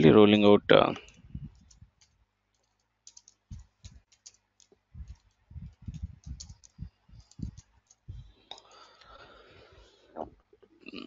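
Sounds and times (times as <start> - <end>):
typing on computer keyboard: 1.0 - 8.1.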